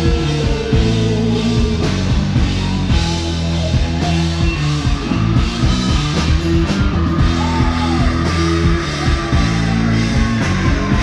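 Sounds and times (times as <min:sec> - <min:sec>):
drum kit steady beat: 0:00.0 - 0:11.0
live rock band playing: 0:00.0 - 0:11.0.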